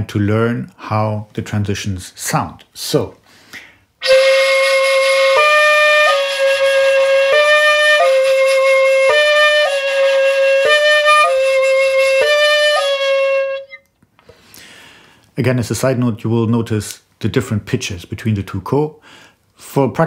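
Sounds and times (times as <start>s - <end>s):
bamboo flute long note: 4.0s - 13.8s.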